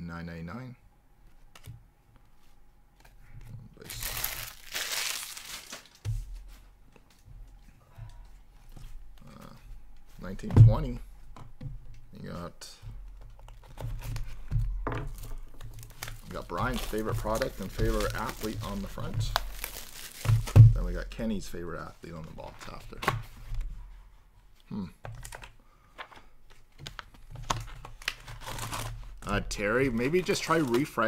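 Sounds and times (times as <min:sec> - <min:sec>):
foil wrappers crinkling: 0:03.8 - 0:06.1, 0:15.1 - 0:20.6, 0:26.8 - 0:31.0
cards clicking and rustling: 0:15.1 - 0:20.6, 0:25.1 - 0:31.0.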